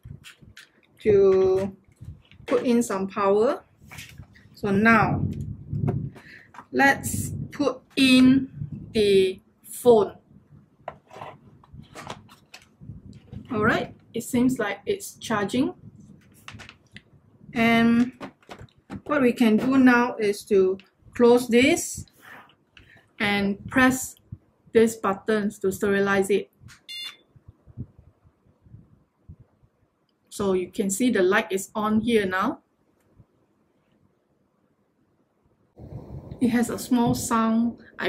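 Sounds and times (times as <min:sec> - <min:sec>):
phone knocking and scraping plastic: 0:10.8 - 0:13.5, 0:18.0 - 0:19.8
short electronic beep: 0:26.9 - 0:27.2.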